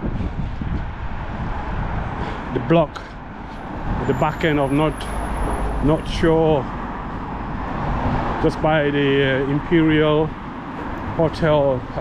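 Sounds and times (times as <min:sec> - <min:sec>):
street traffic: 0:00.0 - 0:12.0
wind buffeting microphone: 0:00.0 - 0:12.0.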